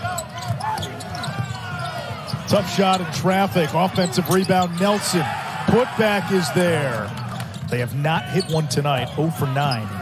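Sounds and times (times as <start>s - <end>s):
sneakers squeaking: 0.0s - 5.9s, 6.8s - 10.0s
arena crowd noise: 0.0s - 10.0s.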